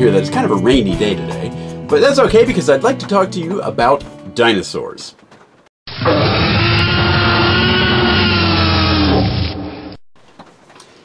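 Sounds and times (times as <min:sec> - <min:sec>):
dinosaur roar: 0:05.9 - 0:10.0.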